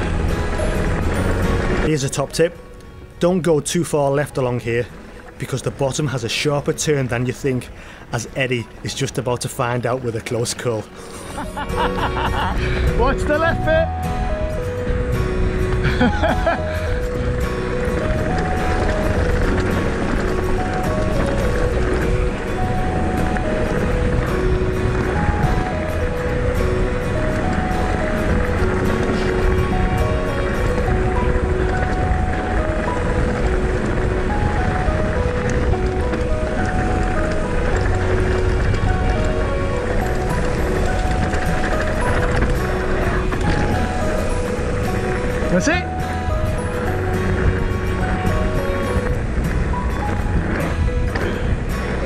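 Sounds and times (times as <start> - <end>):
wind rumble: 0.0 - 10.3, 10.9 - 52.0
background music with held notes: 0.0 - 52.0
bike tyres rolling on gravel: 0.0 - 52.0.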